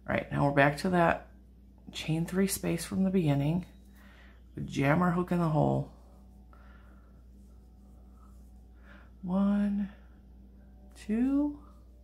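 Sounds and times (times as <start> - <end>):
low steady hum: 0.0 - 12.0.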